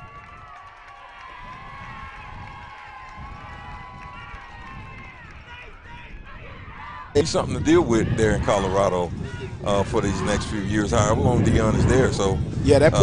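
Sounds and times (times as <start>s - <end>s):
distant crowd voices: 4.1s - 13.0s.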